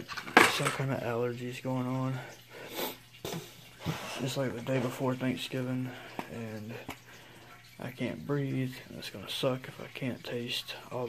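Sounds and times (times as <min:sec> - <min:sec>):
person speaking: 0:03.9 - 0:11.0.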